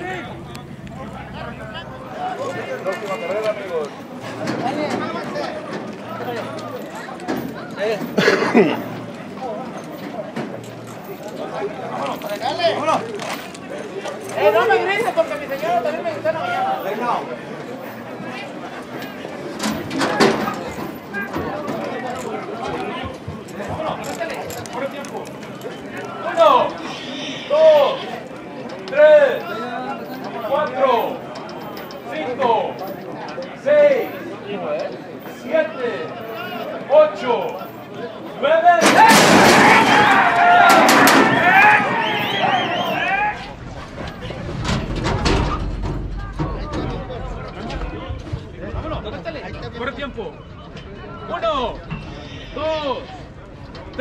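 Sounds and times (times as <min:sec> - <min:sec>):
low rumble: 0:00.0 - 0:03.0
men talking and calling out: 0:00.0 - 0:54.0
men shouting together: 0:38.9 - 0:43.4
high warbling whistles: 0:41.6 - 0:43.4.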